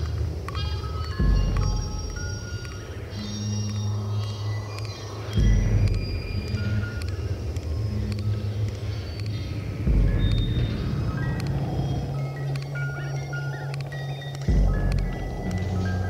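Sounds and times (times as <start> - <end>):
faint ticks: 0.0 - 9.6, 10.3 - 16.0
low synth bass notes: 9.8 - 11.5, 14.5 - 16.0.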